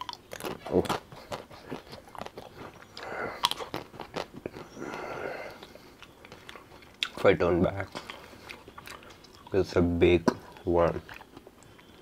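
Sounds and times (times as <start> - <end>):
sharp crunches and clicks: 0.0 - 11.9
ice cream being chewed: 0.0 - 12.0.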